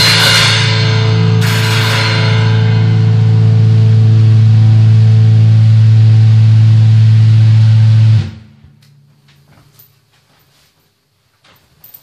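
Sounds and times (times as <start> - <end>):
rock song chord ringing: 0.0 - 9.3.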